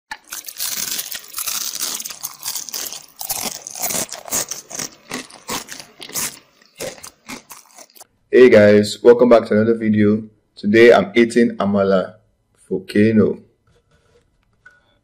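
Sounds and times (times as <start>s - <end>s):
crunching crackling noises: 0.1s - 8.1s.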